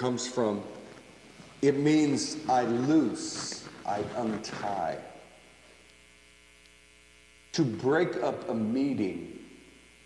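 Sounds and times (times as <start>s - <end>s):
faint mains hum: 0.0s - 10.0s.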